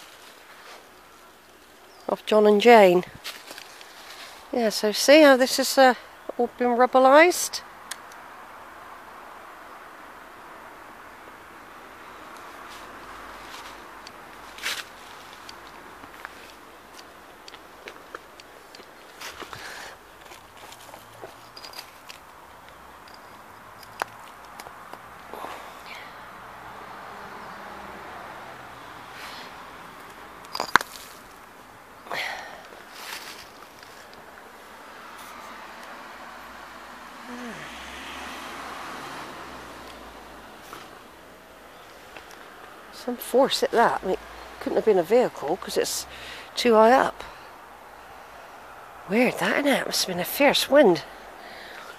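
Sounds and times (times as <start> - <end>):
distant traffic hum: 0.0 - 51.9
footsteps on leaves and rubble: 3.2 - 4.5, 12.7 - 22.3, 32.8 - 34.3
stone clicks and knocks: 30.4 - 31.0.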